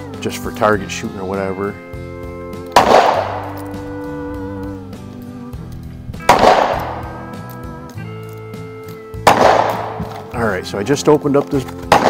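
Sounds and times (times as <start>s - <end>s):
background music with chords: 0.0s - 12.0s
gunshots: 2.7s - 3.6s, 6.2s - 7.2s, 9.2s - 10.2s.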